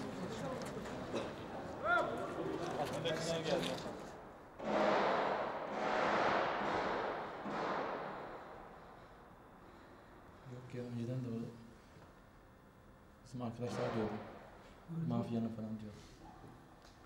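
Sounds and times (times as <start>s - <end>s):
loud rushing noise: 4.6s - 8.6s.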